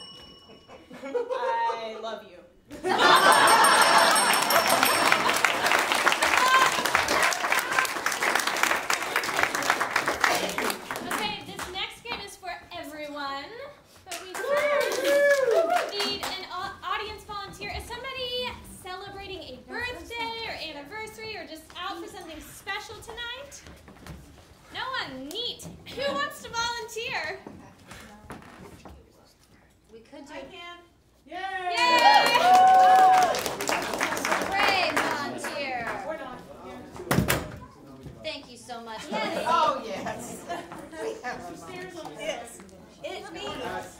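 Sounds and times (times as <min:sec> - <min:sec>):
audience applauding: 0:03.1 - 0:11.5, 0:14.1 - 0:16.4, 0:31.8 - 0:36.2
high voice cheering: 0:06.2 - 0:08.0.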